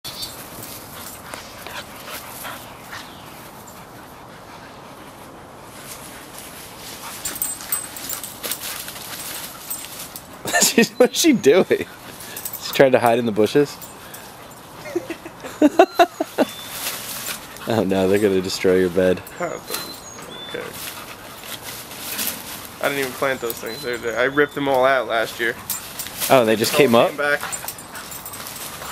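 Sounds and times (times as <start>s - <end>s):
rustling of leaves and stems: 0.1s - 4.2s, 4.8s - 28.9s
dogs scuffling through grass: 0.1s - 15.1s, 16.0s - 28.9s.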